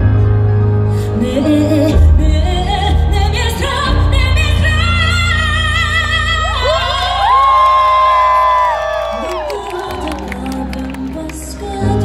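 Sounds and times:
pop backing track bass: 0.0s - 12.0s
audience whooping and cheering: 6.4s - 11.6s.

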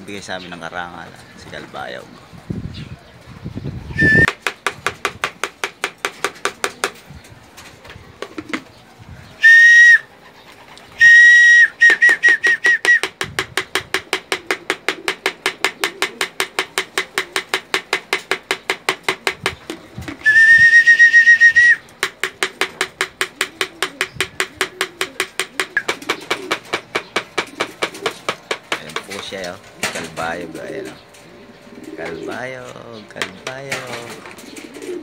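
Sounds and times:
whistle calls: 3.9s - 4.4s, 9.4s - 10.1s, 10.9s - 13.1s, 20.2s - 21.9s.

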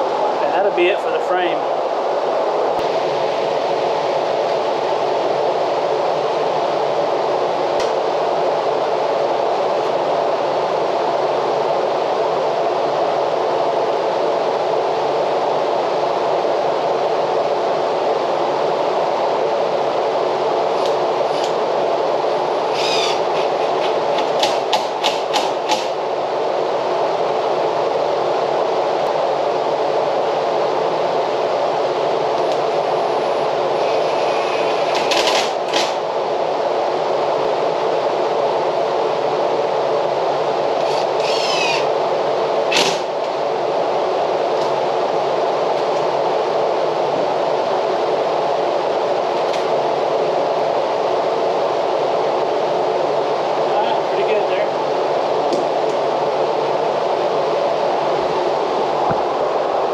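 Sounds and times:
steady background whir: 0.0s - 59.9s
cordless drill driving screws: 22.7s - 23.6s, 40.8s - 41.8s.

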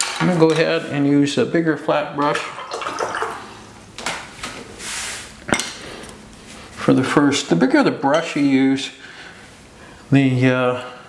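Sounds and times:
water swishing: 2.4s - 3.6s.

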